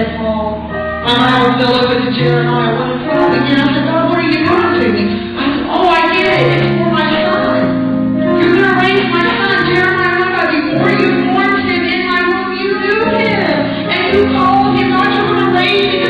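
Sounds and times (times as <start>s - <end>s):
instrumental accompaniment: 0.0s - 16.0s
woman singing: 1.8s - 7.7s, 8.3s - 16.0s.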